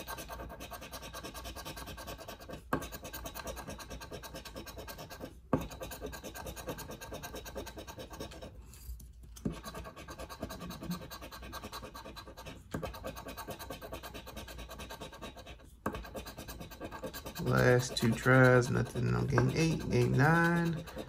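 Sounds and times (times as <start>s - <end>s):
coin scraping scratch-off ticket: 9.4s - 21.0s.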